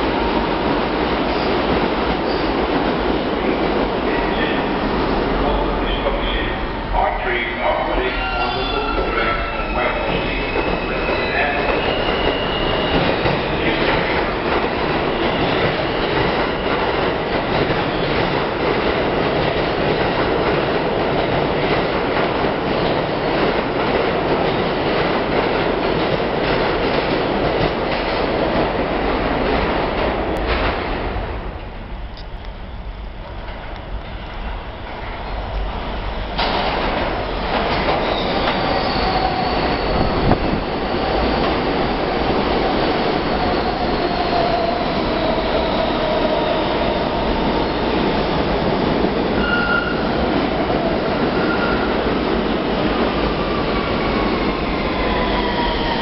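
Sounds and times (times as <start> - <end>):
subway train arriving: 0.0 - 56.0
subway train passing: 0.0 - 56.0
high wheel squeal: 8.1 - 13.1, 38.0 - 40.4, 49.4 - 50.1.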